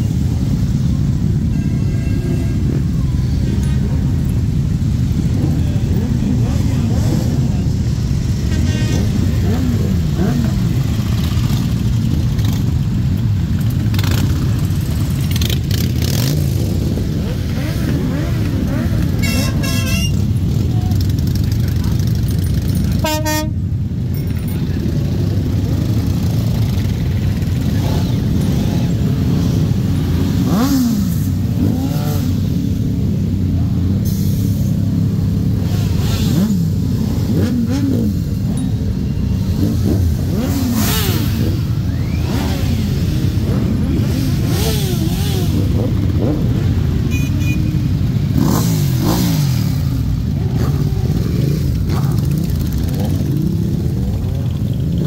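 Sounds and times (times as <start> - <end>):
motorcycle engines rumbling: 0.0 - 55.0
horn tooting: 1.3 - 3.5, 18.7 - 20.5, 22.9 - 23.8, 47.0 - 48.6.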